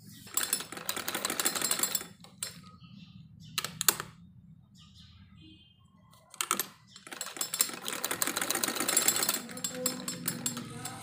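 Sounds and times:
sewing machine stitching: 0.1s - 2.6s, 6.3s - 11.0s
clicks: 3.6s - 4.2s.

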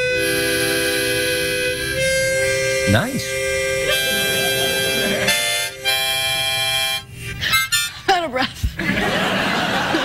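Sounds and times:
harmonicas playing chords: 0.0s - 7.9s.

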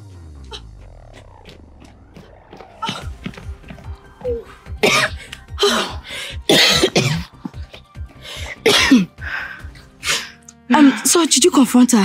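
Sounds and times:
background music: 0.0s - 12.0s
woman coughing hard: 4.8s - 7.8s, 8.4s - 9.2s.

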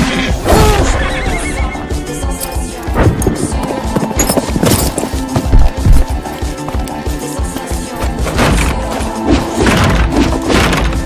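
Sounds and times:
background music: 0.0s - 11.0s
horse whinnying: 0.5s - 1.9s
galloping hoofbeats: 3.1s - 8.2s.

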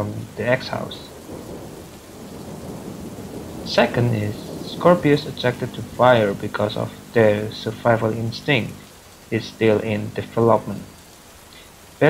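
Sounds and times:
low rumble of thunder: 0.0s - 11.0s
steady rain: 0.0s - 12.0s.

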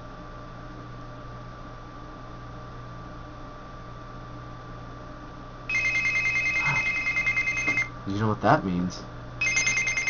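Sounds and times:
electronic alarm trilling: 5.7s - 7.9s, 9.4s - 10.0s.

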